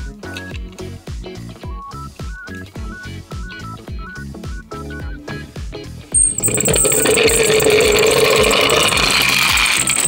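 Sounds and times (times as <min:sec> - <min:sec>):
background music with beat: 0:00.0 - 0:06.4
toy wheels whirring rattle: 0:06.2 - 0:10.0.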